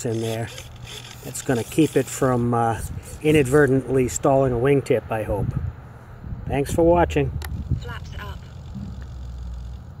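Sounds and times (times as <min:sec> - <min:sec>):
wind rumble on microphone: 0:05.2 - 0:09.2.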